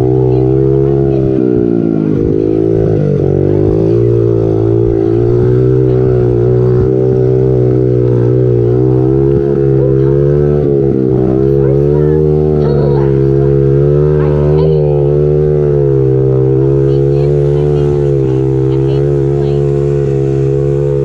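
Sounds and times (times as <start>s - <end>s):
dirt bike engine running: 0.0s - 21.0s.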